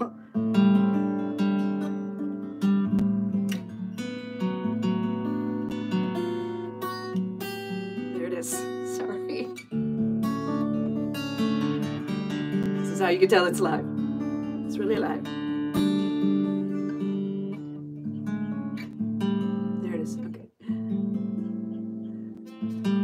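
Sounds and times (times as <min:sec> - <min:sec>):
acoustic guitar strumming chords: 0:00.0 - 0:23.0.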